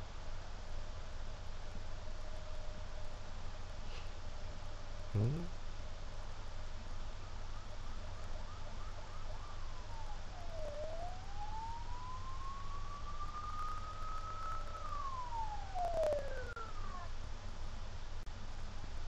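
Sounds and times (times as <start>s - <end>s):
siren through tv speaker: 5.2s - 5.5s, 7.3s - 17.2s.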